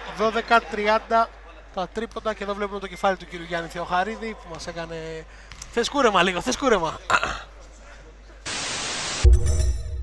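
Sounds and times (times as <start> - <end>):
tv static burst: 8.5 - 9.3.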